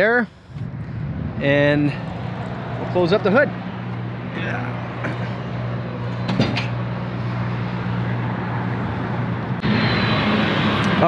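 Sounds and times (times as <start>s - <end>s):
rushing noise: 7.2s - 11.0s.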